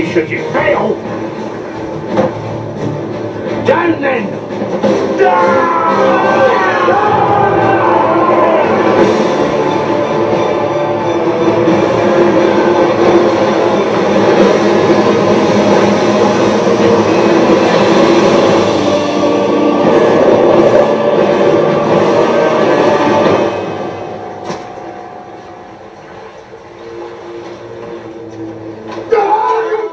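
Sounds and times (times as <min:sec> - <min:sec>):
churning water rushing: 0:00.0 - 0:29.9
orchestral score: 0:00.0 - 0:29.9.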